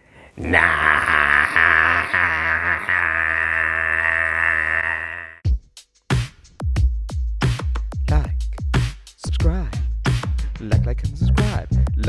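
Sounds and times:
man shouting long drawn-out: 0:00.4 - 0:05.4.

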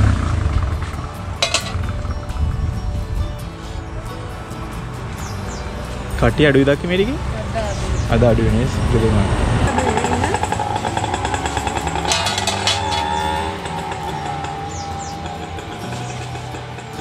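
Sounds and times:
small vehicle engine running: 0:00.0 - 0:02.2, 0:07.2 - 0:17.0
background music: 0:00.0 - 0:17.0.

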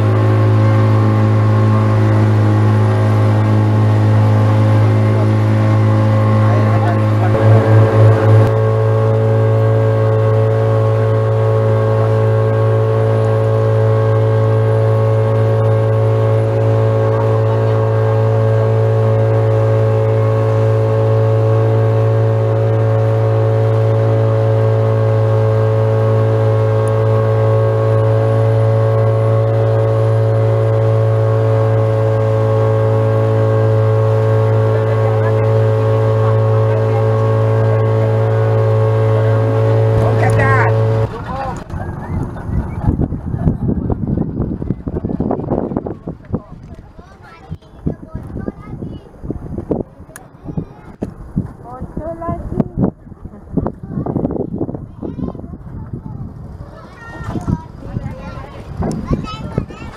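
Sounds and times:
boat engine running: 0:00.0 - 0:59.9.

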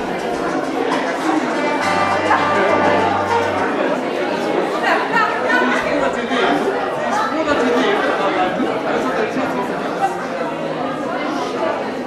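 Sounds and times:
crowd chatting in a hall: 0:00.0 - 0:12.0.

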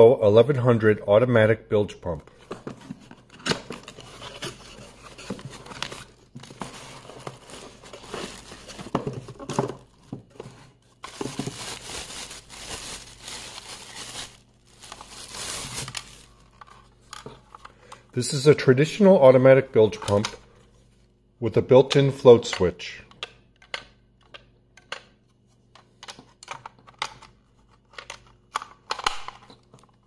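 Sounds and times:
plastic bag crinkling: 0:10.9 - 0:16.9.

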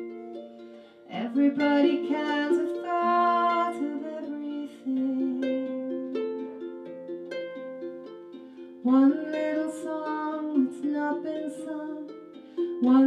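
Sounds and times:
person singing: 0:00.0 - 0:13.0.

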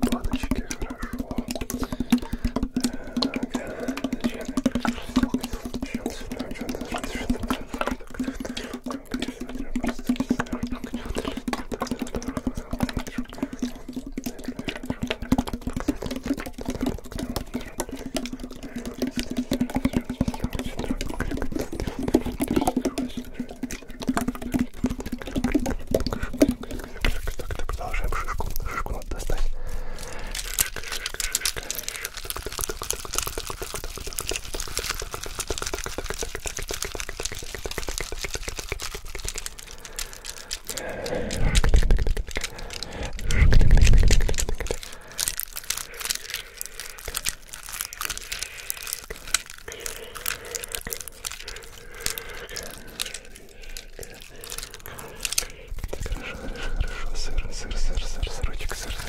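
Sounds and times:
scratching and tapping on tin can: 0:00.0 - 0:59.0.

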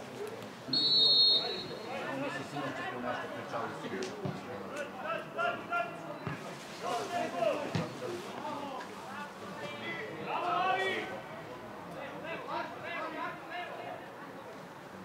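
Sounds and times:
men calling and shouting: 0:00.7 - 0:14.6.

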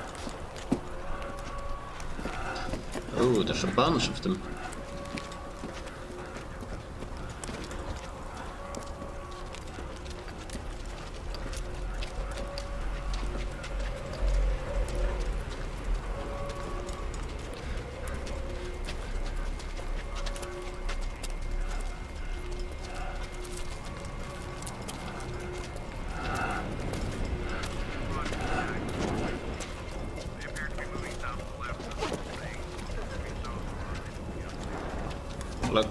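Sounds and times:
indistinct voices: 0:00.0 - 0:35.9
low rumble: 0:00.0 - 0:35.9.

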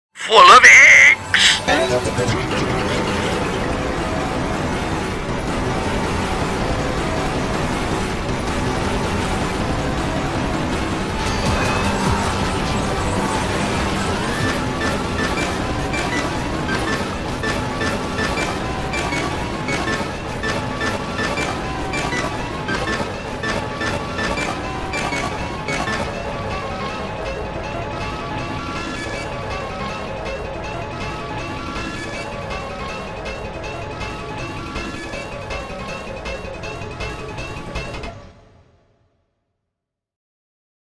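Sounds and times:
cluttered music and sound effects: 0:00.2 - 0:38.8.

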